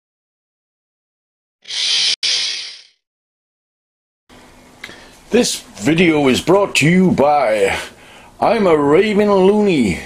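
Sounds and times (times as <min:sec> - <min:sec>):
hissing noise burst: 0:01.6 - 0:02.9.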